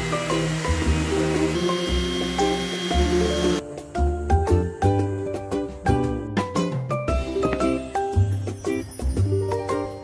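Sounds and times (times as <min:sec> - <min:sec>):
orbital sander running: 0:00.0 - 0:03.6
background music: 0:00.0 - 0:10.0.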